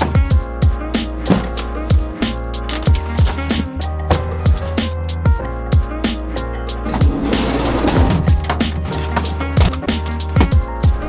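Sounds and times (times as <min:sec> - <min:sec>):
electronic music with kick drums: 0:00.0 - 0:11.0.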